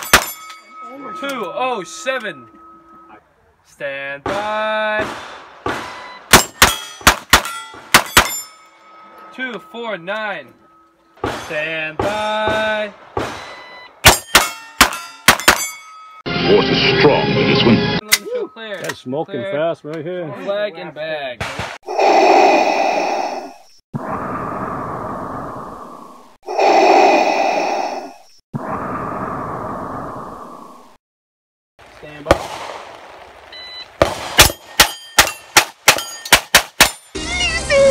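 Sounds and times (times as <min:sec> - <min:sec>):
sharp gunshots: 0:00.0 - 0:00.4, 0:04.2 - 0:08.5, 0:11.2 - 0:15.8, 0:21.4 - 0:21.8, 0:32.1 - 0:33.4, 0:34.0 - 0:37.2
steel target plates ringing: 0:00.0 - 0:02.9, 0:05.9 - 0:12.2, 0:13.4 - 0:16.3, 0:34.4 - 0:37.2.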